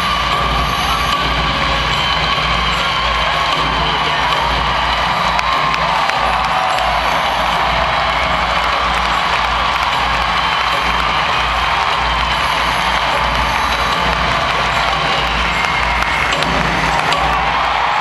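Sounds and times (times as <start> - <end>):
crowd cheering and shouting: 0.0 - 18.0
music over loudspeakers: 0.0 - 18.0.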